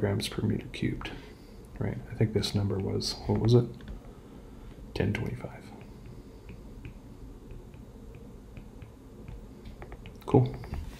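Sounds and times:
stylus tapping on glass screen: 0:05.8 - 0:10.9.

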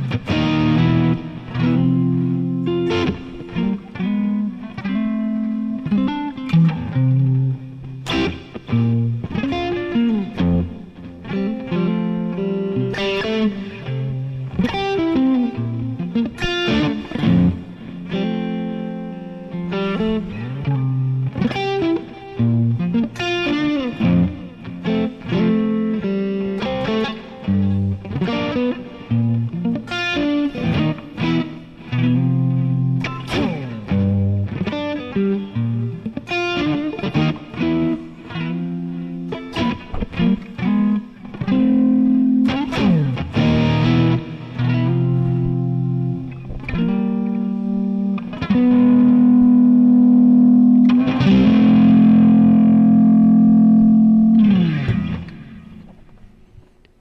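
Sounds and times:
electric guitar playing chords: 0:00.0 - 0:57.0.

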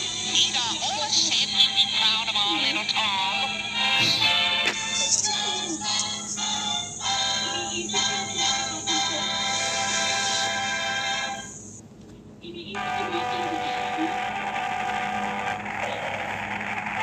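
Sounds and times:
orchestral cartoon music: 0:03.7 - 0:11.5.

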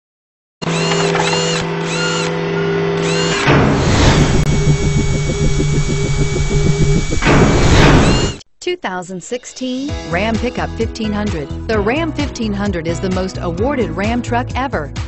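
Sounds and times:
drill-like pulsing whir: 0:00.6 - 0:08.4
whoosh: 0:03.4 - 0:08.4.

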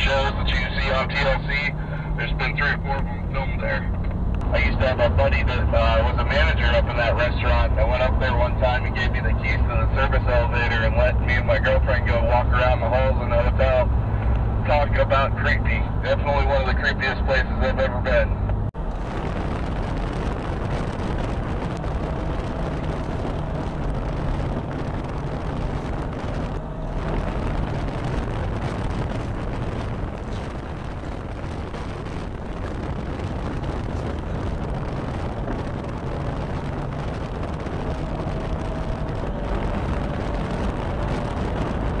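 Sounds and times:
road and engine noise in car: 0:00.0 - 0:42.0.

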